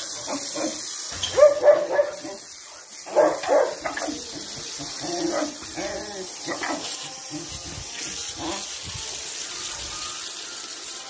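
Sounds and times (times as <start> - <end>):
steady hiss: 0.0 - 11.0
dogs barking: 0.1 - 7.5.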